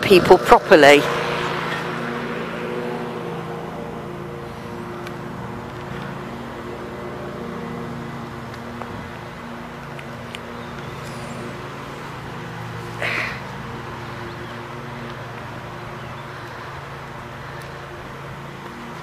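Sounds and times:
engine running: 0:00.0 - 0:19.0.

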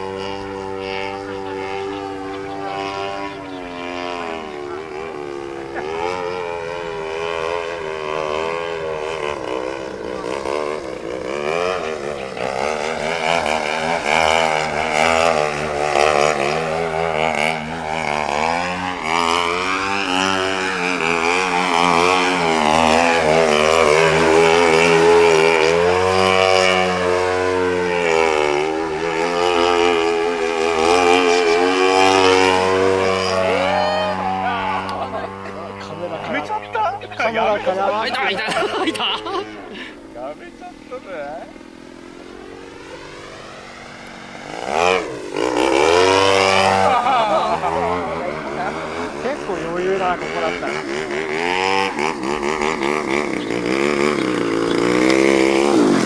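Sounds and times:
model airplane engine: 0:00.0 - 0:56.0.

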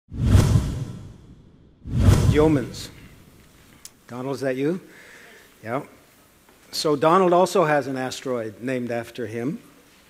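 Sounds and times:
low rumble: 0:00.1 - 0:03.2
whoosh sound effect: 0:00.1 - 0:03.2.

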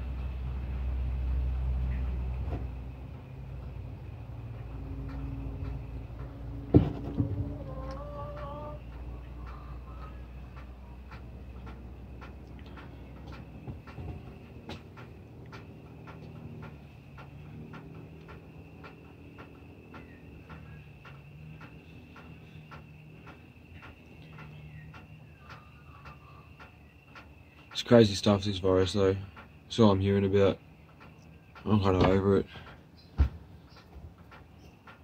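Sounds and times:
regular ticking: 0:00.0 - 0:35.0.

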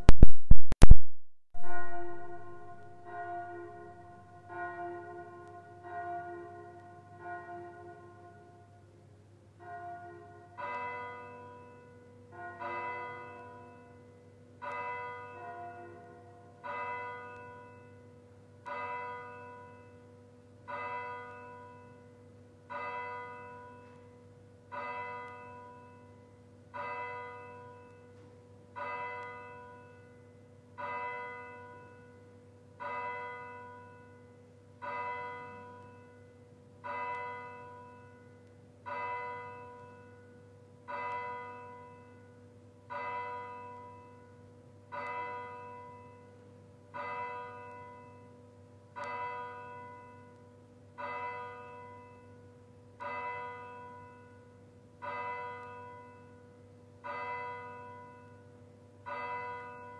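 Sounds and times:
church bell tolling: 0:01.6 - 0:59.9.

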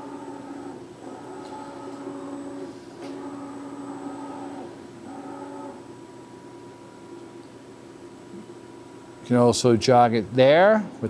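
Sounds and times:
servo drives whining: 0:00.0 - 0:05.9.

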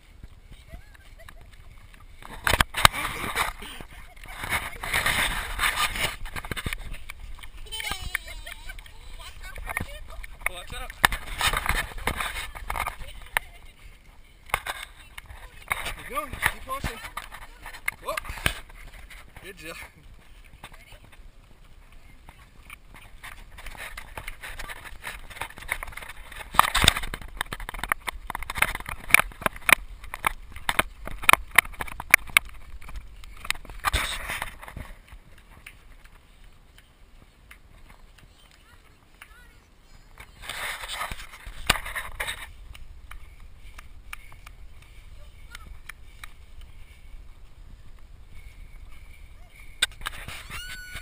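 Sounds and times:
bicycle rattling over bumpy path: 0:00.0 - 0:51.0.

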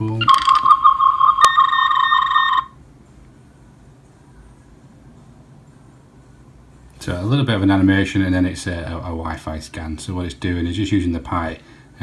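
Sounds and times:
faint room hiss: 0:00.0 - 0:12.0
rapidly pulsing electronic beep: 0:00.3 - 0:02.8.

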